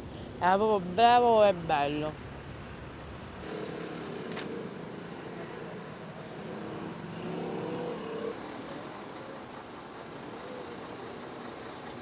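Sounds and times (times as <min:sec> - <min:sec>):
road traffic: 0:00.0 - 0:12.0
vehicle passing: 0:03.3 - 0:11.2.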